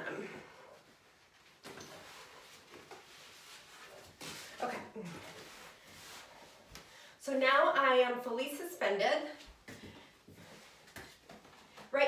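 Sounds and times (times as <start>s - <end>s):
rustling of straps and clothing: 0.5s - 7.1s, 9.5s - 12.0s.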